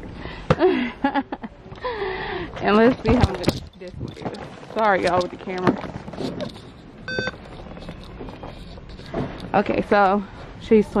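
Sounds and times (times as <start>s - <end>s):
faint store background noise: 0.0s - 11.0s
scanner beep: 7.1s - 7.4s.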